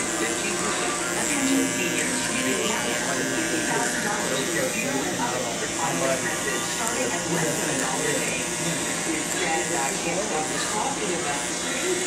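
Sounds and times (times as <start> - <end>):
electric hair clippers buzzing: 0.0 - 12.0.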